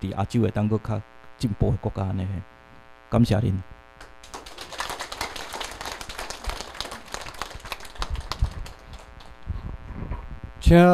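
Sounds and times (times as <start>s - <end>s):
audience clapping: 4.0s - 9.6s.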